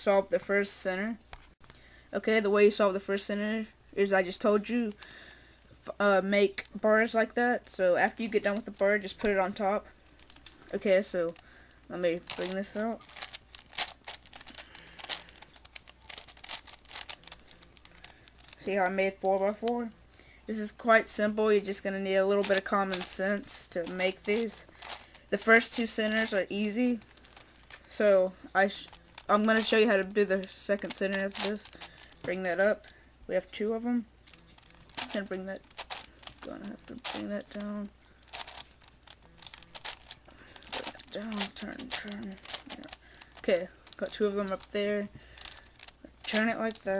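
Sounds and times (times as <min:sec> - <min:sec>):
puzzle cube clicking: 0:12.2 - 0:19.0, 0:21.7 - 0:28.0, 0:28.6 - 0:32.9, 0:34.5 - 0:44.8.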